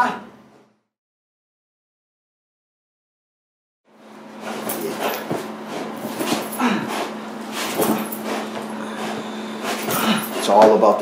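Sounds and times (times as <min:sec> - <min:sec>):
steady low hum: 0:03.9 - 0:11.0
bite suit scuffing floor: 0:04.3 - 0:10.8.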